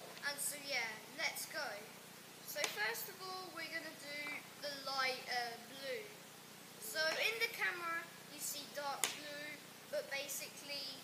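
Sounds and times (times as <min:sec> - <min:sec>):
child speaking: 0:00.0 - 0:06.2, 0:06.8 - 0:11.0.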